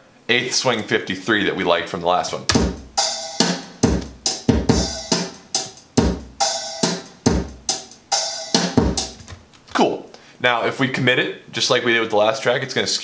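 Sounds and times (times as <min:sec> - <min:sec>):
swung drum loop: 0:02.4 - 0:09.8.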